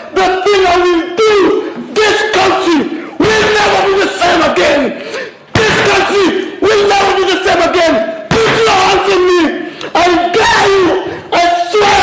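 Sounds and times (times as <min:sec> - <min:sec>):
man shouting: 0:00.0 - 0:12.0.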